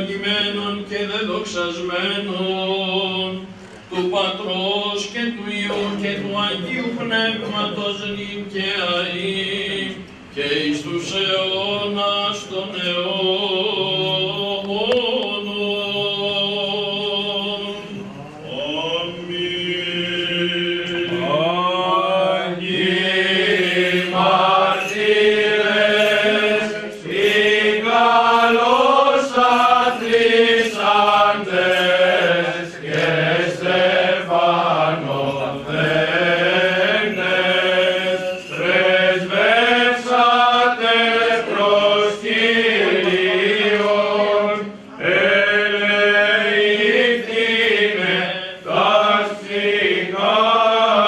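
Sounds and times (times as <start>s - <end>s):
held vocal drone: 0.0s - 51.0s
chanted melody: 22.6s - 43.9s.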